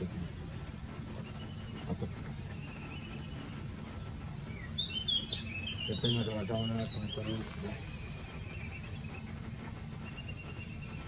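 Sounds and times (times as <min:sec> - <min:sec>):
small birds chirping: 0:00.0 - 0:11.0
steady low background rumble: 0:00.0 - 0:11.0.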